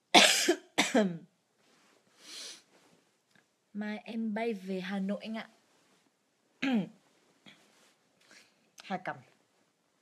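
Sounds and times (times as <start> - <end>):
woman coughing: 0.1 - 1.3, 6.6 - 6.9.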